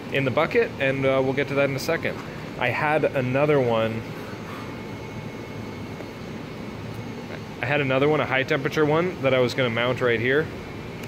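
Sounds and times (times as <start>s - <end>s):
workshop background hum: 0.0s - 11.0s.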